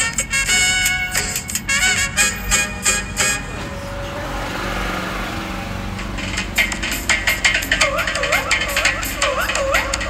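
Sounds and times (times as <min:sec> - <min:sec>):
music: 0:00.0 - 0:03.6, 0:05.9 - 0:10.0
car cabin road noise: 0:00.0 - 0:10.0.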